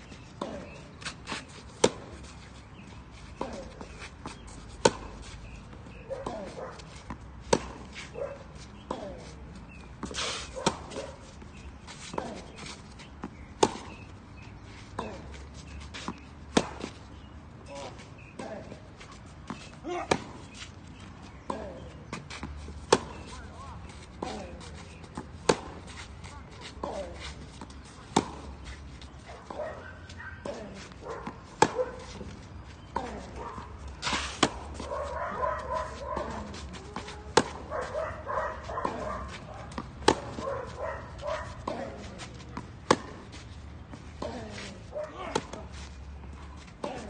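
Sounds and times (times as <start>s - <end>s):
tennis ball bouncing: 1.7s - 2.2s, 3.4s - 7.9s, 9.9s - 11.1s, 13.2s - 14.0s, 16.0s - 17.0s, 19.4s - 20.5s, 21.4s - 23.4s, 24.2s - 26.0s, 27.6s - 28.5s, 30.4s - 47.0s
racket striking tennis ball: 4.8s - 5.2s, 5.9s - 6.6s, 7.4s - 8.1s, 10.0s - 11.1s, 16.5s - 17.0s, 19.5s - 20.5s, 22.4s - 23.3s, 25.1s - 25.8s, 28.0s - 28.4s, 30.4s - 32.3s, 34.0s - 37.9s, 38.6s - 43.3s.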